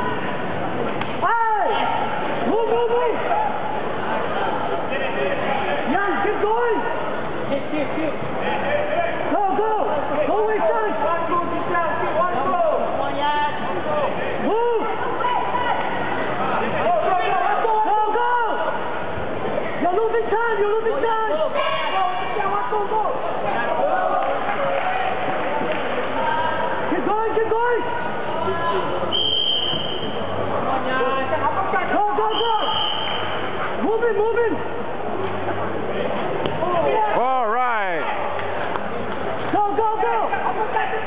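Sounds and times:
crowd murmur in a hall: 0.0s - 41.0s
echoing voices and shouts: 1.1s - 41.0s.

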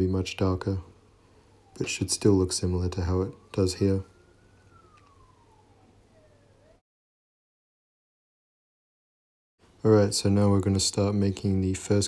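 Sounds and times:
low background hum: 0.0s - 6.8s
faint siren wailing: 0.0s - 6.9s.

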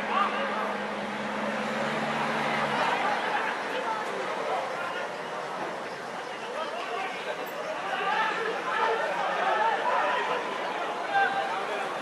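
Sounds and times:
voices calling out and chattering: 0.0s - 12.0s.

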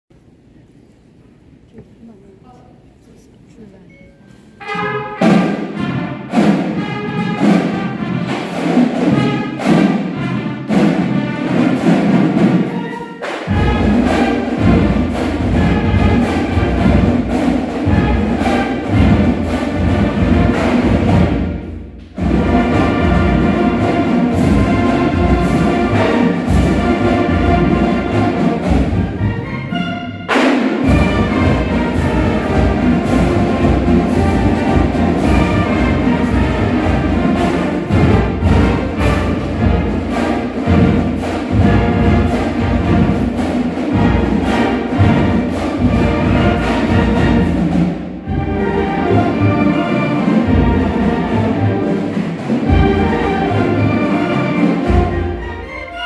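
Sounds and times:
marching band playing: 1.9s - 56.0s.

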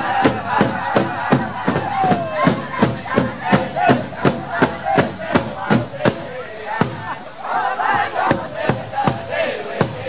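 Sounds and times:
drum struck in steady beat: 0.0s - 7.2s, 7.8s - 10.0s
high wavering group chanting: 0.0s - 10.0s.

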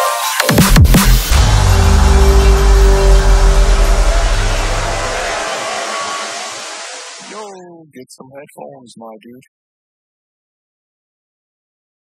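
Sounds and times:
electronic dance music: 0.0s - 7.7s
person speaking: 7.2s - 9.5s.

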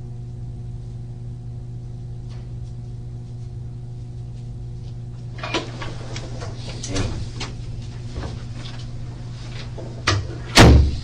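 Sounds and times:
low electrical hum: 0.0s - 11.0s
wooden door thump: 10.6s - 11.0s.

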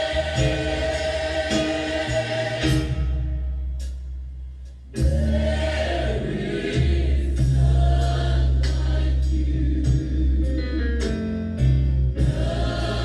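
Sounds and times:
gospel choir singing with band: 0.0s - 3.5s, 5.0s - 11.2s, 12.1s - 13.0s.

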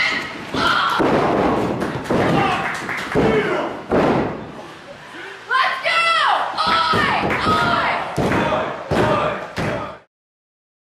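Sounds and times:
heavy thuds of wrestlers: 0.4s - 4.6s.

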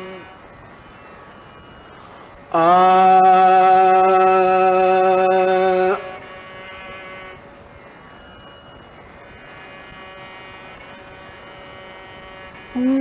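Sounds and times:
recording hiss: 0.0s - 13.0s
tanpura drone: 0.0s - 13.0s.

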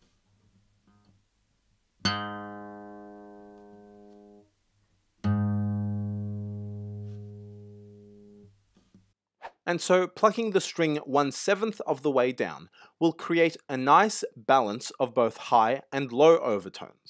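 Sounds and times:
acoustic guitar string plucked: 2.0s - 4.4s, 5.2s - 8.5s.

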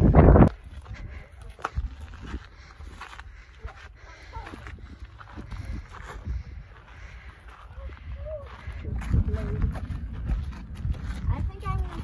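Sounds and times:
footsteps on gravel: 0.0s - 12.0s
wind rumble on microphone: 0.0s - 12.0s.

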